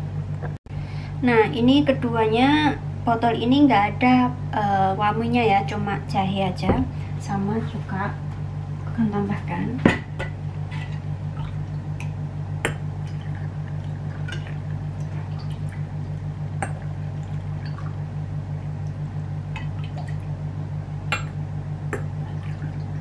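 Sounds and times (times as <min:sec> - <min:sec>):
low hum: 0:00.0 - 0:23.0.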